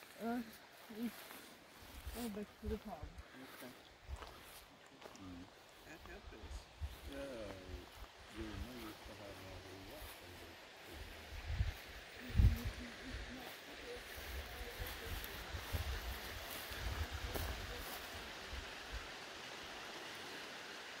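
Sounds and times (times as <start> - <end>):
breezy hiss: 0.0 - 21.0
wind buffeting microphone: 11.1 - 13.4.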